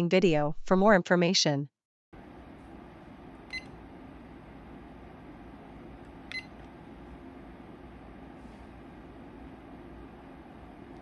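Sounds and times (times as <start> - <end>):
short electronic beeps: 6.3 - 6.5.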